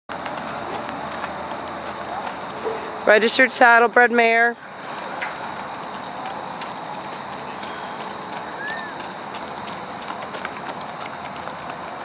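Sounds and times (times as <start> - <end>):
hoofbeats on dirt and gravel: 0.1 - 12.0
steady outdoor hiss: 0.1 - 12.0.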